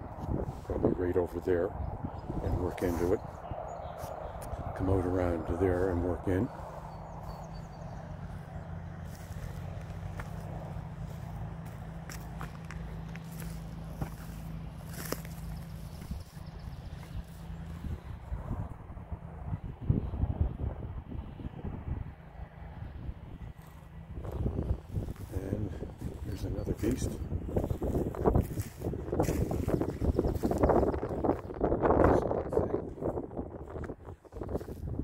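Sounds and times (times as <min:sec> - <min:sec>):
low wind noise on microphone: 0:00.0 - 0:35.0
footsteps on dry grass: 0:02.1 - 0:18.8, 0:23.5 - 0:32.0, 0:33.1 - 0:35.0.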